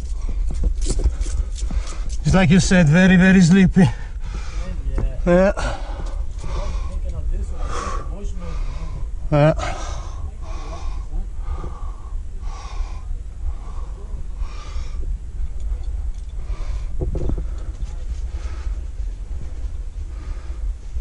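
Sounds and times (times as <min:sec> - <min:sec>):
person breathing hard: 0:00.0 - 0:02.2, 0:03.9 - 0:19.1, 0:20.0 - 0:21.0
steady low rumble: 0:00.0 - 0:21.0.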